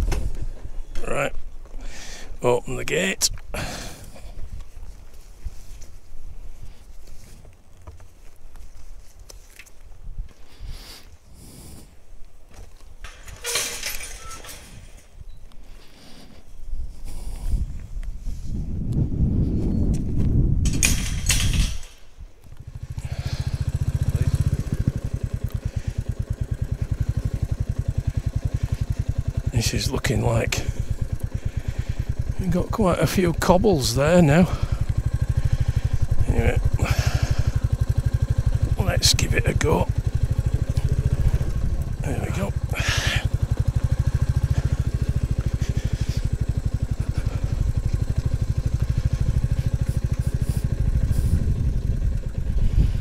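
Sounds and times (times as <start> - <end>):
metal gate knocks and clanks: 13.1 - 14.8, 20.6 - 22.1
motorcycle engine running: 20.7 - 53.0
loud rumble: 22.6 - 53.0.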